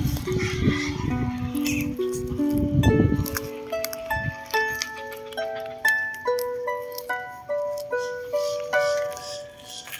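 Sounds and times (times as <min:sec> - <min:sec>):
small harp plucked melody: 0:00.1 - 0:09.9.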